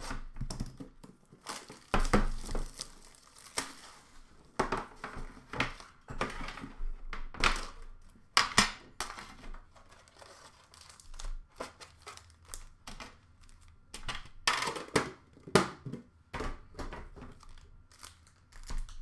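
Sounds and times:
card pack wrappers crinkling: 0.6 - 4.2, 9.1 - 13.7, 17.3 - 19.0.

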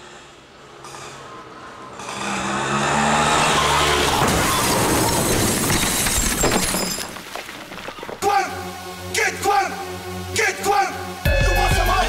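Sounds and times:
crash with scraping and clattering: 4.0 - 8.2.

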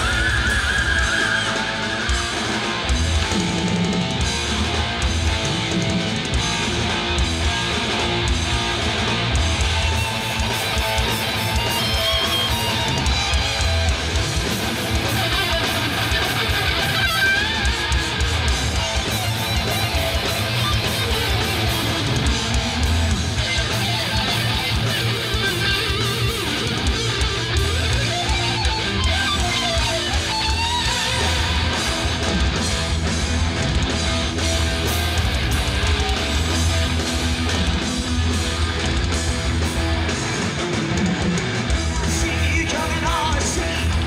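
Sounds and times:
electric guitar lead: 0.0 - 44.0
heavy metal band playing live: 0.0 - 44.0.

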